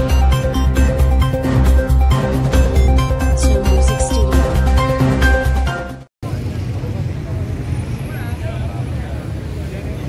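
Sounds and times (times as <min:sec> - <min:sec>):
low rumble of street noise: 0:06.2 - 0:10.0.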